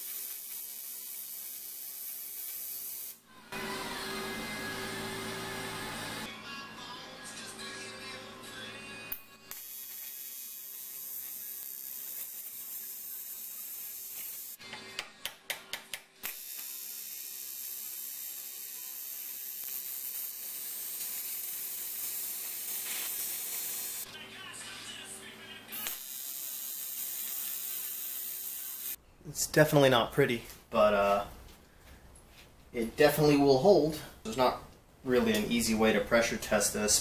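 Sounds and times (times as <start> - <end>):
welding arc hissing: 0.0 - 6.3, 9.1 - 14.6, 16.2 - 24.2, 25.7 - 29.0
short sharp welding pulses: 16.2 - 24.1, 25.8 - 29.0.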